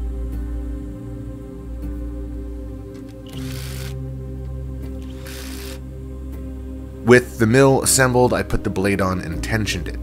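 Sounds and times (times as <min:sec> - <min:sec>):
background music with sustained tones: 0:00.0 - 0:10.0
impact driver running a bolt: 0:03.0 - 0:04.0, 0:05.0 - 0:05.8.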